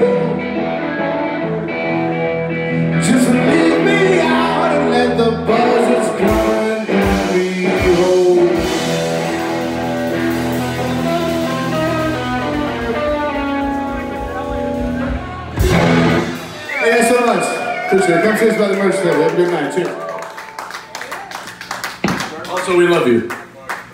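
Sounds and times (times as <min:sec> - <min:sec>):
loud guitar chord ringing: 0:00.0 - 0:16.6
blues band playing: 0:00.0 - 0:22.3.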